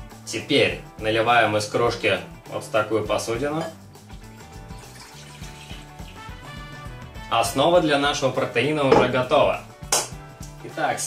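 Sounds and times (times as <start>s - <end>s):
background music: 0.0s - 11.0s
milk pouring into a bowl: 4.4s - 6.8s.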